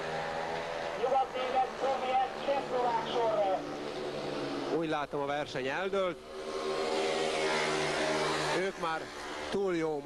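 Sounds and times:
motorcycle engines racing: 0:00.0 - 0:10.0.

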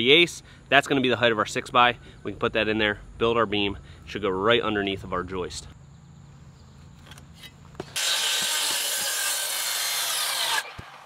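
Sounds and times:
large circular saw cutting wood: 0:07.8 - 0:10.8.

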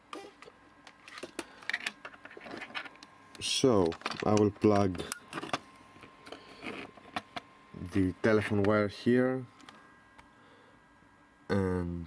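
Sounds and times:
cable rustling and tapping: 0:03.7 - 0:07.5.

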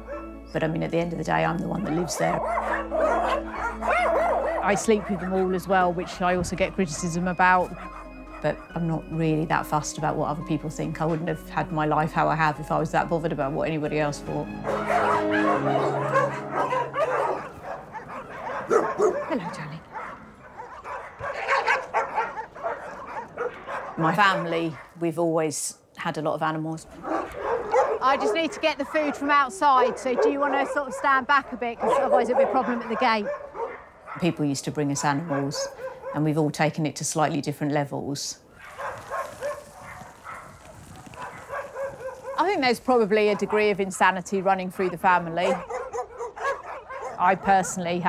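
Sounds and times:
dogs barking and yipping: 0:00.0 - 0:25.0, 0:26.9 - 0:36.5, 0:38.5 - 0:48.0.

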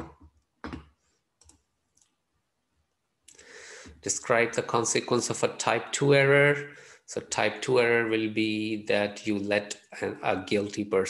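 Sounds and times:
computer mouse clicks: 0:01.4 - 0:02.2.

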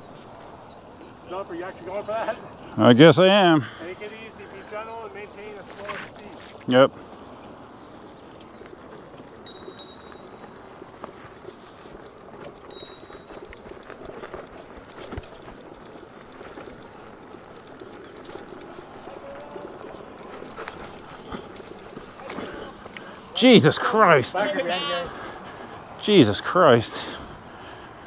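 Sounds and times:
tyre rolling over dirt and grass: 0:08.5 - 0:23.4.

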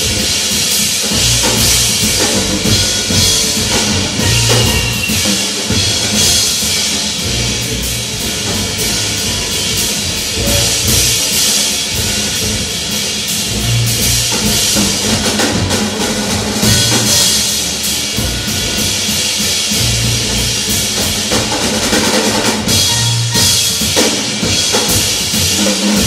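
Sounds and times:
cymbals and snare hits: 0:00.0 - 0:26.0
jazz combo playing: 0:00.0 - 0:26.0
low bass line: 0:01.1 - 0:06.4, 0:07.2 - 0:17.5.

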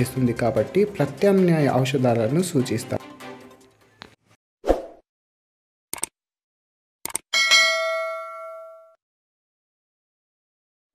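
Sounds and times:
notification bell ding: 0:07.4 - 0:09.0.

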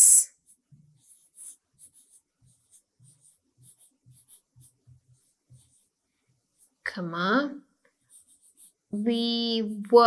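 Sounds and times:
pen scratching on writing board: 0:00.3 - 0:06.8, 0:07.9 - 0:10.0.

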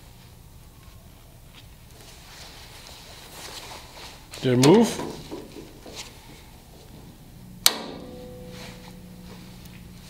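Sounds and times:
sharp metallic clank: 0:07.6 - 0:09.5.

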